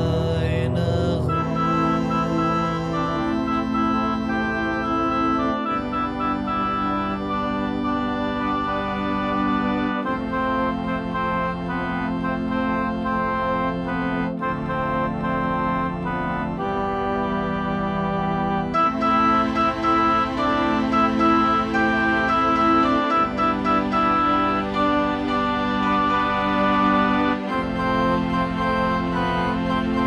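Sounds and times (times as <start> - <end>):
darkwave keyboard music: 0.0 - 30.0.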